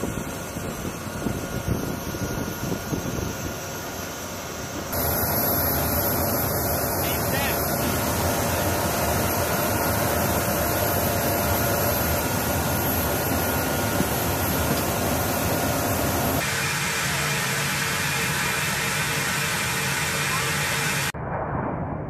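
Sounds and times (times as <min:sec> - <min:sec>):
jet engine rush and whine: 0:00.0 - 0:22.0.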